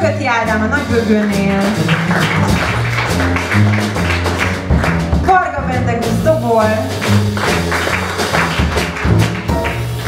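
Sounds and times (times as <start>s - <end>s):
piano: 0.0s - 10.0s
plucked double bass: 0.0s - 10.0s
drum and cymbal taps: 1.0s - 10.0s.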